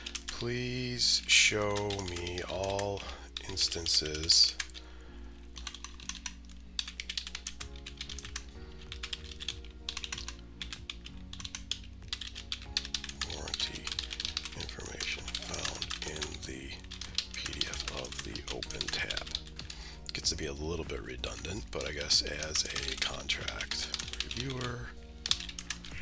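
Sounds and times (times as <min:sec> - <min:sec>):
keyboard typing: 0:00.0 - 0:00.5, 0:01.5 - 0:04.9, 0:05.5 - 0:20.4, 0:21.2 - 0:26.0
background music with chords: 0:00.0 - 0:26.0.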